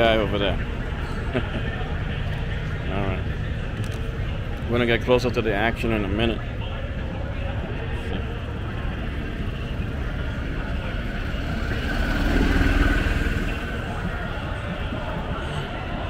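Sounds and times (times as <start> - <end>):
vehicle engine: 0.0 - 16.0
voices over public address: 1.7 - 16.0
low rumble: 8.3 - 15.8.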